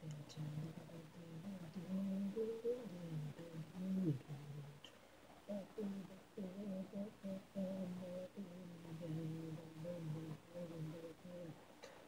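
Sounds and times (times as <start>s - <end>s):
person humming a tune: 0.0s - 4.8s, 5.5s - 12.0s.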